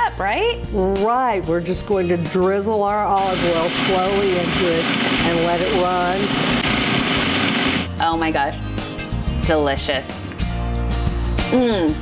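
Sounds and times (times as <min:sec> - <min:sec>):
food processor motor running: 0:03.2 - 0:07.9.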